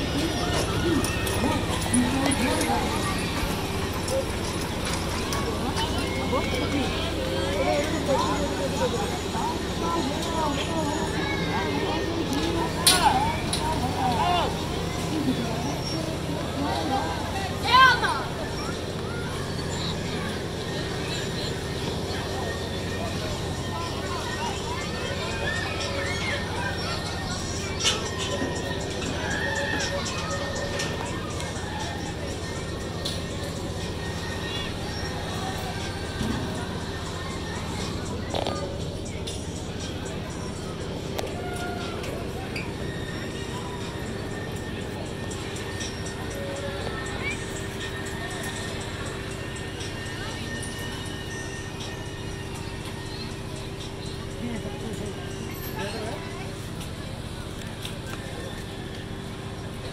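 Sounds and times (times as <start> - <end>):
music: 0.0 - 59.0
children shouting: 0.0 - 59.9
ride machinery hum: 0.0 - 59.9.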